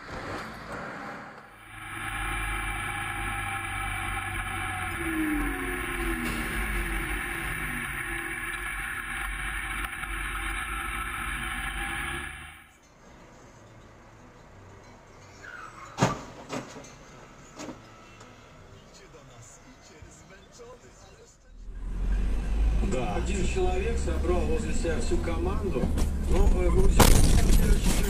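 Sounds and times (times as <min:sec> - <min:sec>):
vehicle running through tunnel: 0:00.0 - 0:12.8
low engine note: 0:01.4 - 0:12.8.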